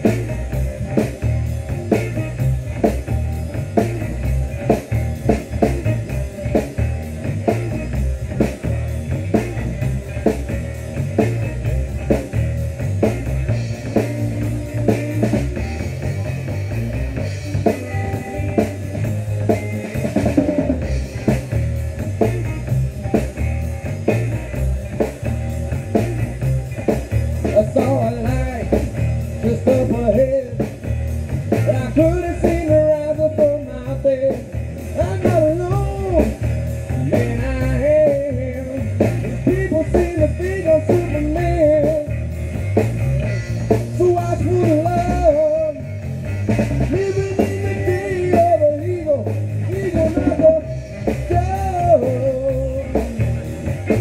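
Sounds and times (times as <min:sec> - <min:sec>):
drum kit steady beat: 0:00.0 - 0:54.0
electric guitars: 0:00.0 - 0:54.0
live rock band playing: 0:00.0 - 0:54.0.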